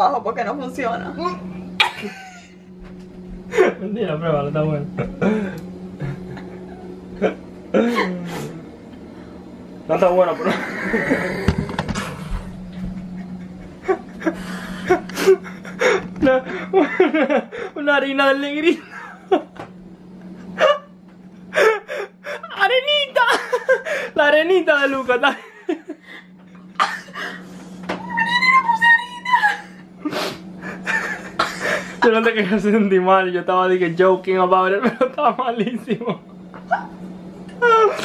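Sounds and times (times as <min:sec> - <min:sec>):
woman laughing breathily: 0:07.7 - 0:08.5, 0:12.8 - 0:17.8, 0:21.5 - 0:22.5, 0:23.3 - 0:24.2, 0:25.9 - 0:27.8, 0:29.3 - 0:32.0
woman squealing: 0:27.9 - 0:29.9, 0:36.6 - 0:37.0, 0:37.6 - 0:38.0.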